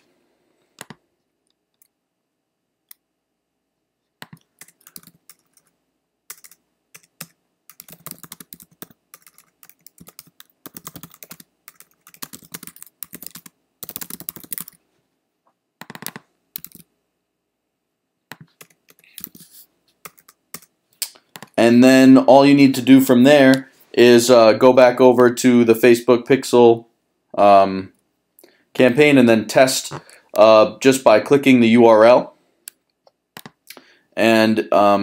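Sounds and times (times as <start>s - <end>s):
computer keyboard typing: 4.2s - 5.7s, 6.3s - 14.8s, 15.8s - 16.9s, 18.3s - 20.7s.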